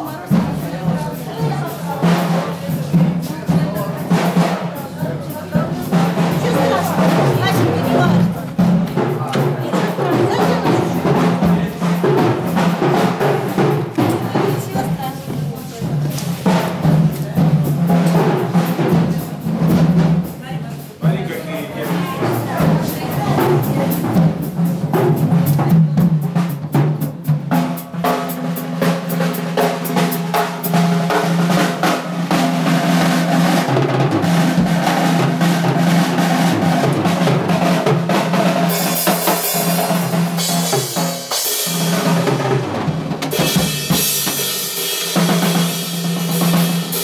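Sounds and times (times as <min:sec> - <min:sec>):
drum kit playing: 0:00.0 - 0:47.0.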